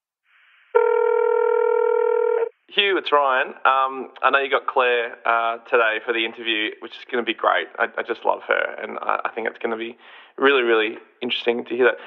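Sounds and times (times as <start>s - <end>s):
faint hiss: 0.1s - 0.8s.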